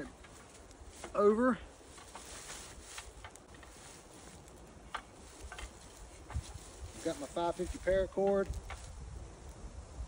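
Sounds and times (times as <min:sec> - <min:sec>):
metal tree stand handled: 0:00.0 - 0:08.9.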